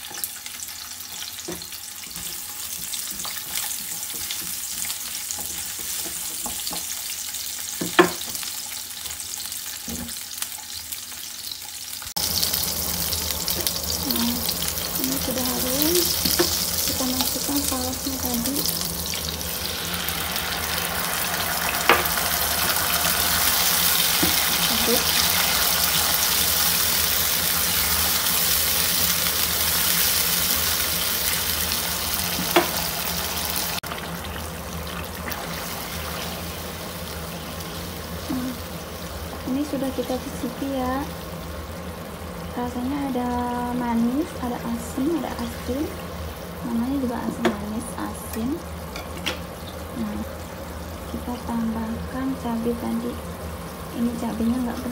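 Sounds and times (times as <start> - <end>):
sauce bubbling in a pan: 0.0 - 47.2
onion sizzling in oil: 0.0 - 54.9.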